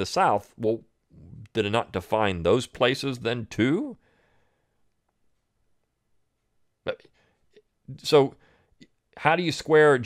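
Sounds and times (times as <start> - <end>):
man speaking: 0.0 - 4.0, 7.9 - 8.4, 9.2 - 10.0.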